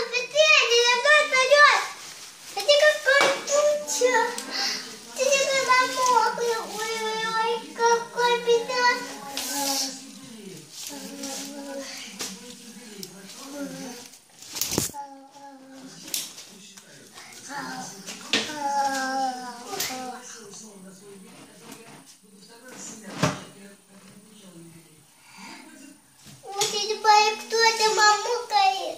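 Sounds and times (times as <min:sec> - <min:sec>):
quiet indistinct talking: 0:00.0 - 0:28.9.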